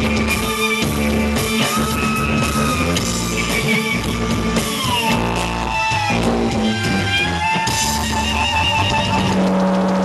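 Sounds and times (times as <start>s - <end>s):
distorted electric guitar: 0.0s - 10.0s
live rock band: 0.0s - 10.0s.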